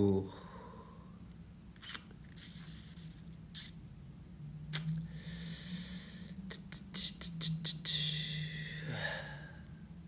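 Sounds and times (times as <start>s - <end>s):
person sniffing: 1.8s - 3.8s, 4.8s - 8.8s.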